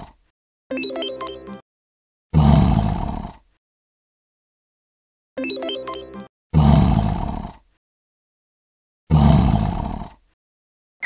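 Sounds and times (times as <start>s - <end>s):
lion roaring: 2.4s - 3.4s, 6.6s - 7.6s, 9.1s - 10.2s.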